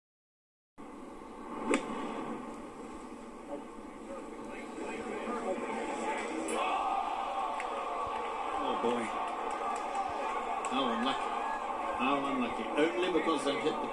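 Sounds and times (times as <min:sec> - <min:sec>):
crowd murmur: 0:03.4 - 0:13.9
crowd reacting: 0:04.2 - 0:13.9.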